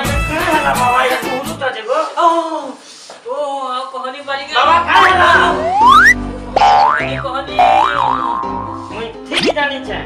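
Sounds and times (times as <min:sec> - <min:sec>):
background music: 0:00.0 - 0:01.6, 0:04.5 - 0:10.0
comic sound effects: 0:04.7 - 0:08.8
wavering up-and-down tones: 0:05.3 - 0:06.8
rising whistle-like pitch sweep: 0:05.4 - 0:06.3.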